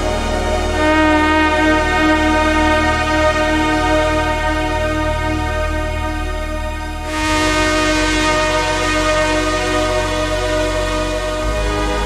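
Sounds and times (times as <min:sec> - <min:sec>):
slowed reverb-heavy electronic music: 0:00.0 - 0:12.0.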